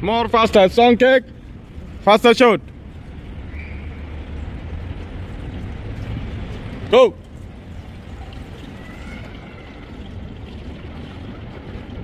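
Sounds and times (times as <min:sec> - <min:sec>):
steady low rumble: 0:00.0 - 0:12.0
water splashing from swimming: 0:05.3 - 0:12.0.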